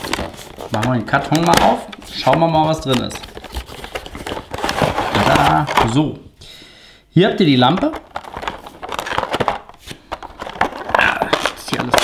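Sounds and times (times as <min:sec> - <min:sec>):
packaging rustling and scraping: 0:00.0 - 0:06.0, 0:07.7 - 0:12.0.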